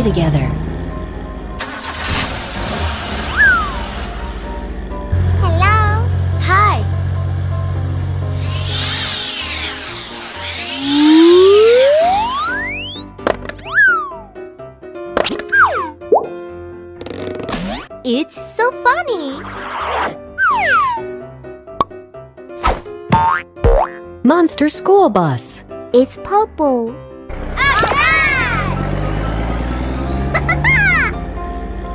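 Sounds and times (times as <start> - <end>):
cartoon engine hum: 3.1 - 14.3, 27.3 - 31.4
rising whistle-like glide: 3.3 - 3.8, 8.3 - 14.2
children's background music: 5.4 - 6.9, 17.7 - 19.7, 23.2 - 29.5, 30.2 - 31.9
high swooping sound: 8.3 - 14.2.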